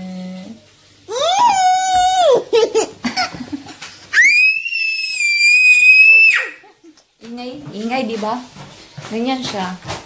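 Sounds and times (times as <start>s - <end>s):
toddler screaming: 1.1s - 2.5s, 4.1s - 6.6s
laughter: 2.5s - 3.8s.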